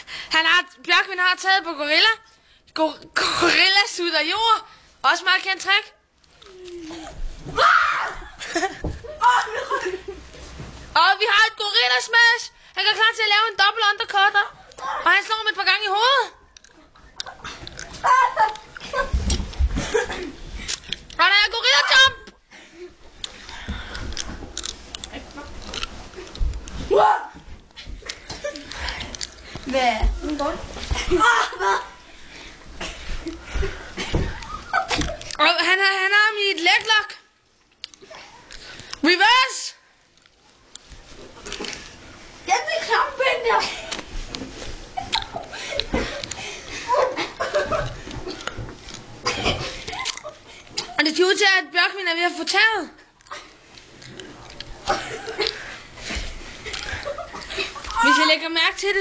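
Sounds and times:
people grunting and straining: 6.4s - 10.0s, 16.6s - 21.1s, 21.7s - 30.3s, 30.9s - 35.3s, 45.0s - 51.0s, 53.2s - 58.3s
people wrestling with knocks and thuds: 6.6s - 10.9s, 17.4s - 21.1s, 21.7s - 31.9s, 32.6s - 35.3s, 42.6s - 50.1s
bodies thudding on floor: 7.1s - 9.2s, 32.9s - 35.2s.

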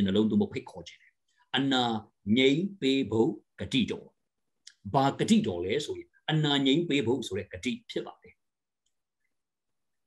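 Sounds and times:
man speaking emphatically: 0.0s - 8.4s.

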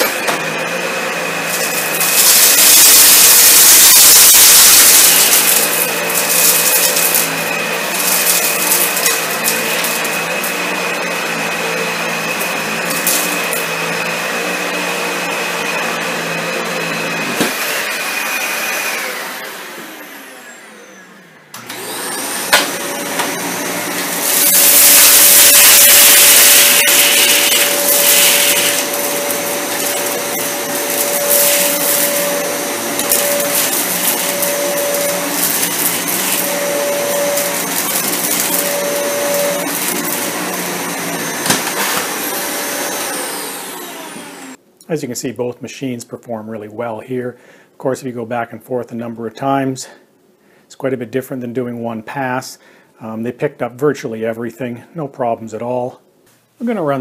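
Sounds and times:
vacuum sucking up debris: 0.0s - 20.7s, 21.6s - 44.6s
vacuum cleaner whining: 0.0s - 44.6s
vacuum motor spinning down: 0.0s - 44.6s.

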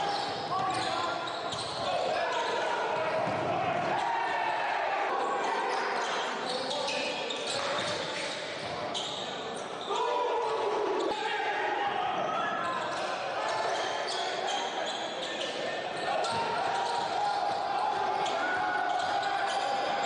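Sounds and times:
indistinct echoing shouts: 0.0s - 6.9s, 9.8s - 20.0s.

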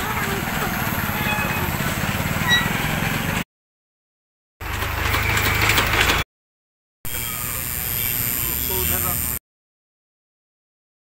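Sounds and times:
street background noise: 0.0s - 3.4s, 4.6s - 6.2s, 7.1s - 9.4s.

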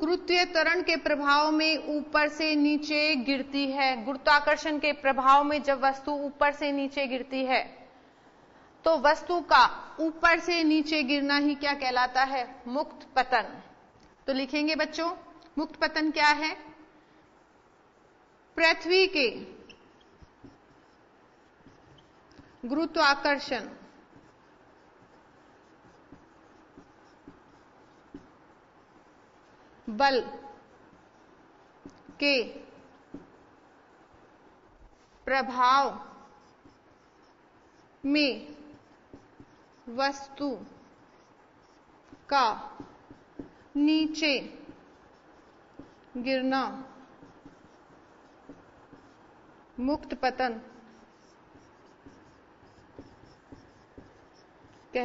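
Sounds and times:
low steady hiss: 0.0s - 55.0s
marker writing on whiteboard: 8.7s - 55.0s
marker tapping: 17.3s - 55.0s.

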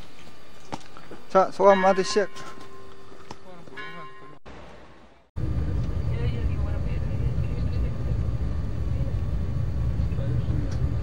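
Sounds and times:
low rumble of moving vehicle: 5.4s - 11.0s.

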